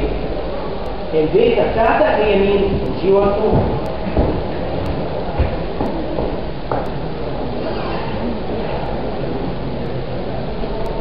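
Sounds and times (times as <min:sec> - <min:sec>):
steady noisy background: 0:00.0 - 0:11.0
dull low thumps: 0:02.6 - 0:07.4.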